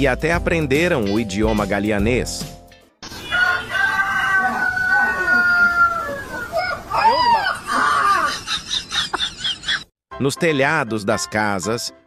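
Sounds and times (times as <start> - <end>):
rooster crowing: 3.1 - 7.8.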